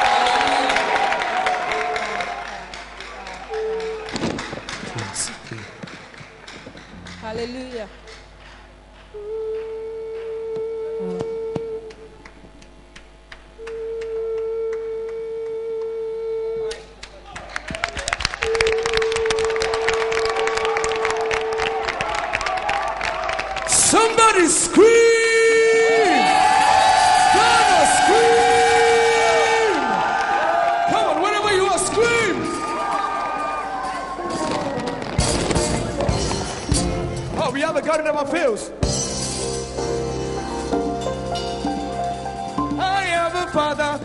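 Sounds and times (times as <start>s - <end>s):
audience applauding and cheering: 0.0s - 10.6s, 17.0s - 36.8s
hand clapping: 0.2s - 10.7s, 11.6s - 15.9s, 16.7s - 23.7s
horn long steady note: 3.2s - 4.4s, 9.0s - 12.6s, 13.5s - 17.0s, 18.3s - 22.0s, 24.8s - 30.2s.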